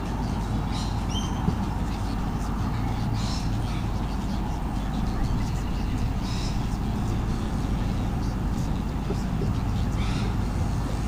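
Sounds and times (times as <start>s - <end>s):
low rumble with hum: 0.0s - 11.0s.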